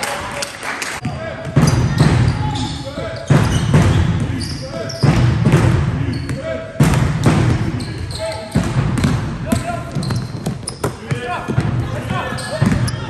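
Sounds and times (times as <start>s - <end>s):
sneaker squeaks: 1.0s - 5.4s, 6.1s - 6.5s, 7.6s - 13.0s
basketball bouncing on hall floor: 1.0s - 13.0s.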